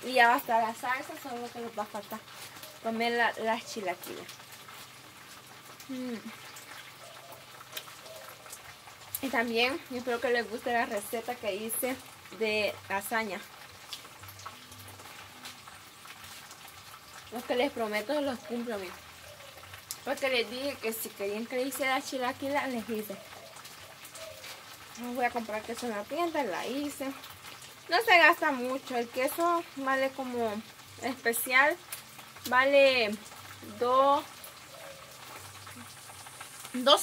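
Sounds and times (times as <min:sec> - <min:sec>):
tortillas frying in hot oil: 0:00.0 - 0:37.0.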